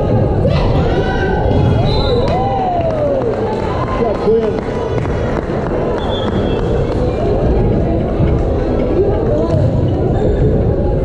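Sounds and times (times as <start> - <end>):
crowd noise: 0.0 - 11.0
shoe squeak: 6.0 - 6.8, 9.3 - 10.6.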